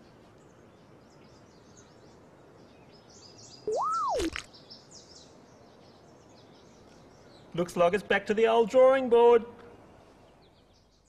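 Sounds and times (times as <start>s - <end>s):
faint birdsong chirps: 0.0s - 11.0s
sliding whistle tone: 3.7s - 4.4s
sharp cracks: 3.8s - 4.5s.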